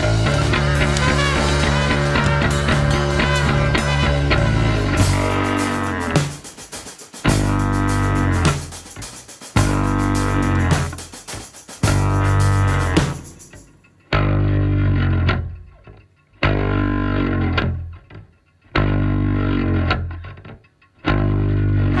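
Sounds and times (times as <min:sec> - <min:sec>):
rock band playing: 0:00.0 - 0:14.5
distorted guitar and bass chords: 0:00.0 - 0:22.0.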